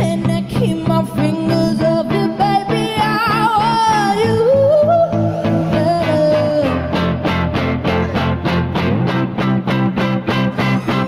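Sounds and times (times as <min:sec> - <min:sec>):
woman singing: 0:00.0 - 0:08.0
strummed electric guitar: 0:00.0 - 0:11.0.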